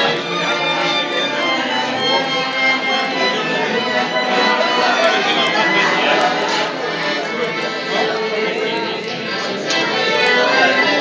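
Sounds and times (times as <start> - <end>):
diners talking: 0.0 - 11.0.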